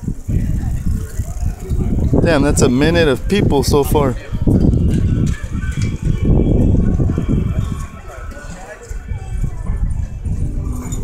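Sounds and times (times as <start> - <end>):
faint voices: 0.0 - 11.0
wind buffeting microphone: 0.0 - 11.0.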